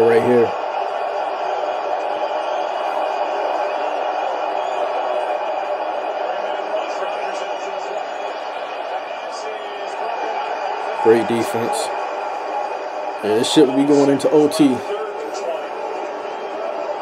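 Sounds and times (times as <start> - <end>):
stadium crowd din: 0.0 - 17.0
announcers talking: 6.1 - 17.0.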